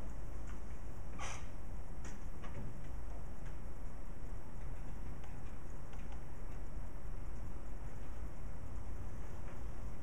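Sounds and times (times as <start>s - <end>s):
low room hum: 0.0s - 10.0s
faint irregular clicks: 4.5s - 6.7s.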